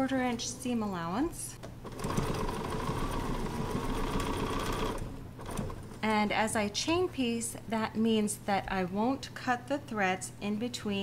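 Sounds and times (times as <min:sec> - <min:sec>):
sewing machine running: 0:01.8 - 0:06.0.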